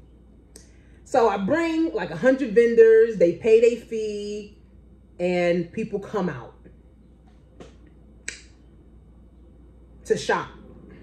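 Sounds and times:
low hum: 0.0s - 11.0s
sharp click: 7.6s - 8.5s.

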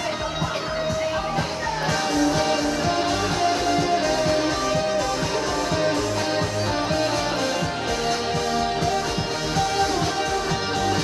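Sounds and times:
band backing track with drum beat: 0.0s - 11.0s
electric guitar playing: 0.0s - 11.0s.

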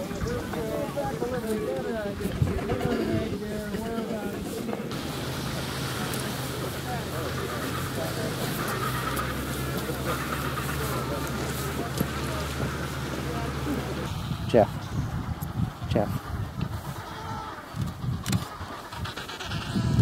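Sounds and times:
penguin colony calling: 0.0s - 14.1s, 14.8s - 20.0s.

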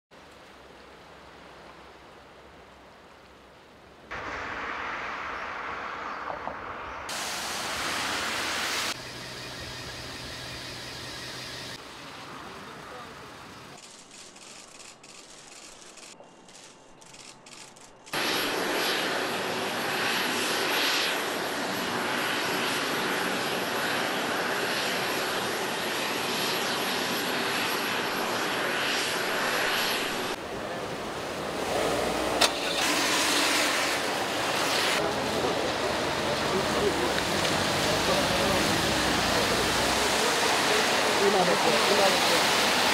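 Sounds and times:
jet engines whining: 4.1s - 11.8s, 18.2s - 42.9s
street traffic: 30.3s - 42.9s
voices: 35.0s - 42.9s.

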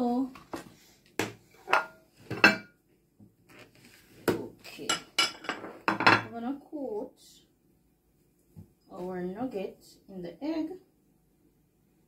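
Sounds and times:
ceramic dishes clinking on countertop: 1.6s - 2.7s, 4.9s - 6.3s.

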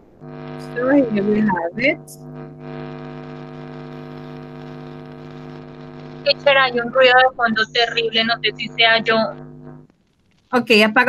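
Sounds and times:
electrical hum through microphone: 0.0s - 11.0s.

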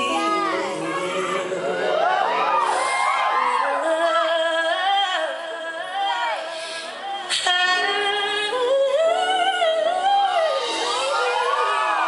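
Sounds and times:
woman singing into microphone: 0.0s - 12.0s.

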